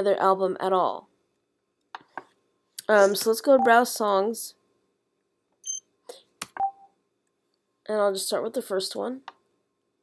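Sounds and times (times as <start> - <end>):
brief beep-like tone: 5.6 - 5.8.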